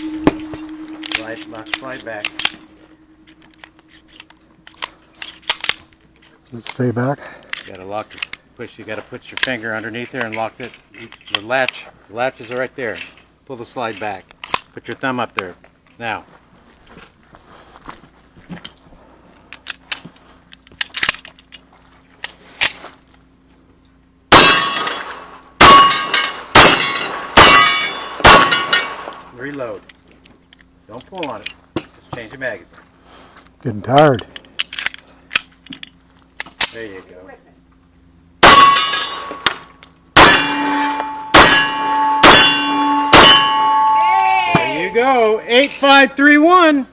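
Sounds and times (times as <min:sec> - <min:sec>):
metallic clicks of pistol handling: 0:03.3 - 0:06.8, 0:07.4 - 0:08.5, 0:14.0 - 0:14.7, 0:19.5 - 0:22.8, 0:34.4 - 0:36.8
pistol shots: 0:24.3 - 0:29.2, 0:40.2 - 0:43.9.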